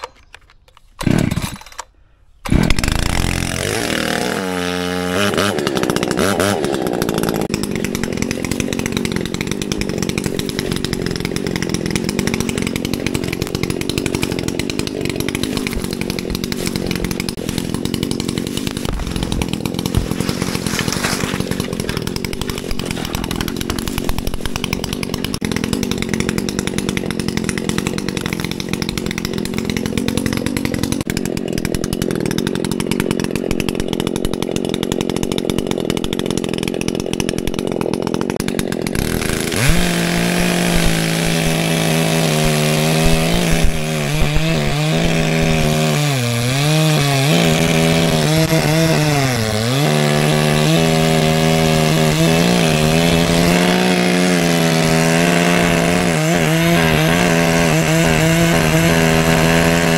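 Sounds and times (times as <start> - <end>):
chainsaw starter cord pulls: 0.0 - 59.9
chainsaw engine revving and running: 1.0 - 1.8, 2.5 - 59.9.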